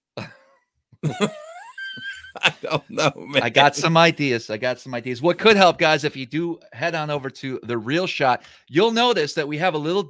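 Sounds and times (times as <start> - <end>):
man laughing: 1.0 - 4.2.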